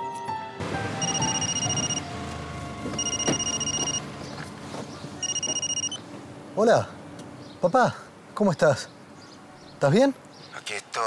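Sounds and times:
mobile phone ringtone: 0:01.0 - 0:02.1, 0:03.0 - 0:04.0, 0:05.2 - 0:06.0.

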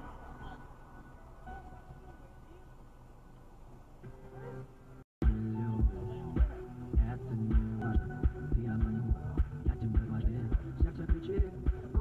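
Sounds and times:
music with low bass beat: 0:05.2 - 0:12.0.

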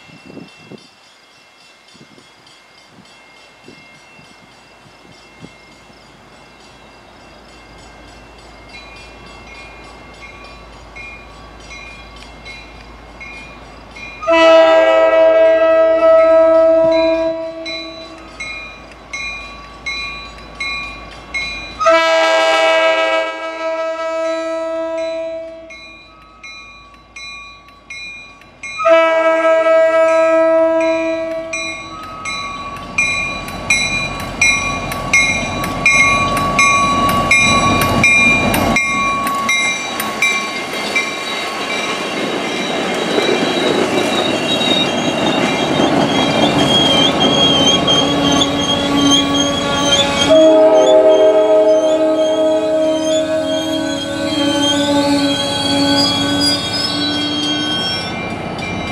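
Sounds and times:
train rumbling past: 0:00.0 - 0:58.9
train air horn: 0:14.2 - 0:18.3, 0:21.8 - 0:25.7, 0:28.8 - 0:31.7, 0:47.6 - 0:58.0
wheels clacking on rail joints: 0:30.7 - 0:58.9
bell dinging: 0:30.8 - 0:43.8.

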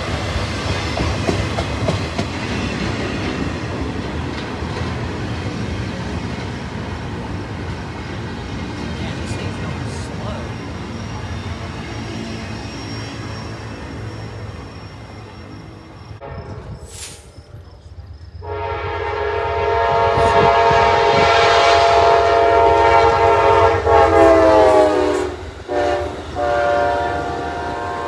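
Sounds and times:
freight train wheels rumbling: 0:00.0 - 0:28.0.

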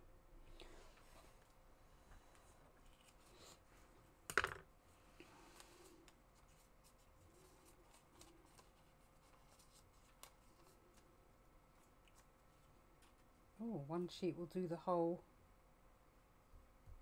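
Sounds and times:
paper rustling: 0:05.6 - 0:11.1.

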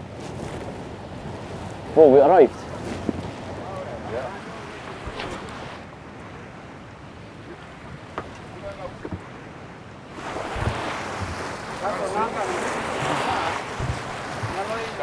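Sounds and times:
lake water lapping: 0:00.0 - 0:15.0
wind: 0:00.0 - 0:15.0.

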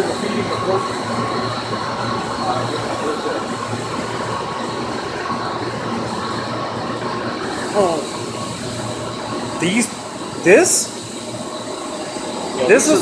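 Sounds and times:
electric water pumps humming: 0:00.0 - 0:13.0
high whining tones: 0:00.0 - 0:13.0.

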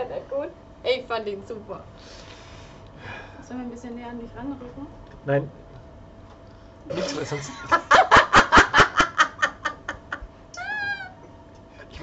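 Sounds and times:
people laughing: 0:06.9 - 0:10.3
high-pitched cry: 0:10.6 - 0:11.2.

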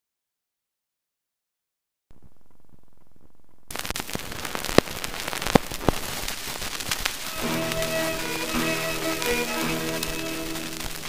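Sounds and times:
loud record pops: 0:02.1 - 0:11.0
record crackle: 0:02.1 - 0:11.0
record surface hiss: 0:02.1 - 0:11.0.

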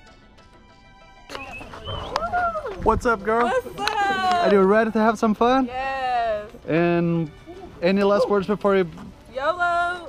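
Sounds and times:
person greeting: 0:02.1 - 0:08.8.

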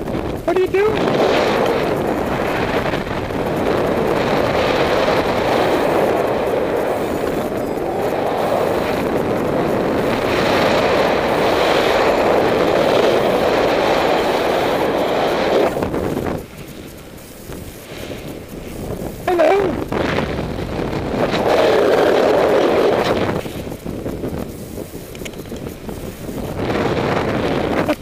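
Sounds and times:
wind rushing over microphone: 0:00.0 - 0:28.0.

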